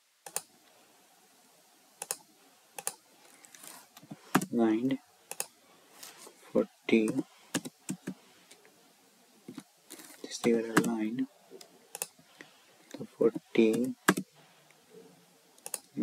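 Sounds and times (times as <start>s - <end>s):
person speaking: 3.6s - 8.6s, 9.5s - 15.1s.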